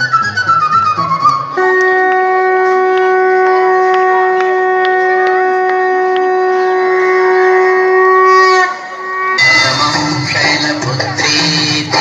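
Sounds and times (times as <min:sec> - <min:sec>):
conch shell blown: 0:01.4 - 0:10.4.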